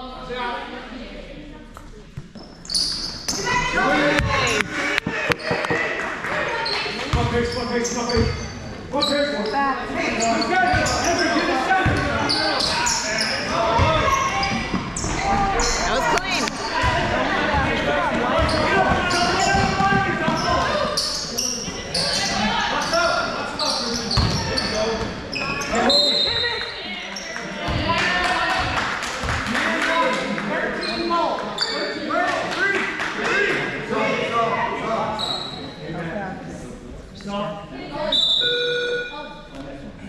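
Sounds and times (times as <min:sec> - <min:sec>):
echoing voices in hall: 0:00.0 - 0:40.0
basketball bouncing on court: 0:04.2 - 0:06.0, 0:24.2 - 0:24.5.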